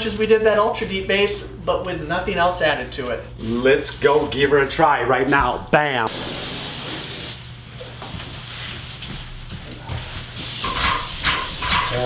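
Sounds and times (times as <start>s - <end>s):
paint spray gun hissing: 6.1s - 7.4s, 10.4s - 12.0s.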